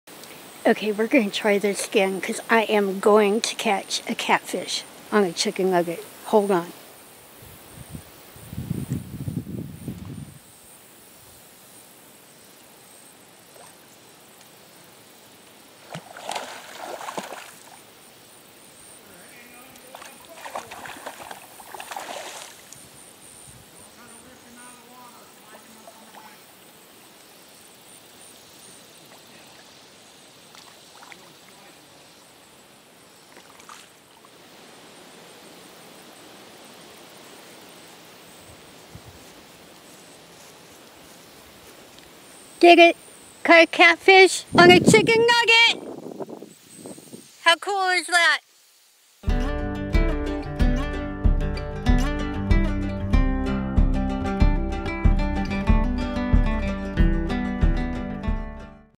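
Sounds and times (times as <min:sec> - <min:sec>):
faint outdoor background: 0:00.0 - 0:58.9
water sloshing and splashing: 0:15.8 - 0:17.8, 0:19.7 - 0:22.8, 0:30.5 - 0:31.6, 0:33.3 - 0:34.4.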